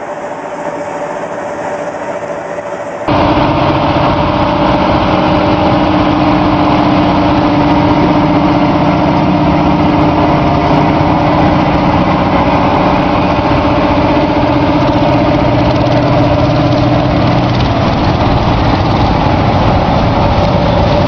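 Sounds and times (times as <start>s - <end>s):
diesel tractor engine running: 0.0s - 21.0s.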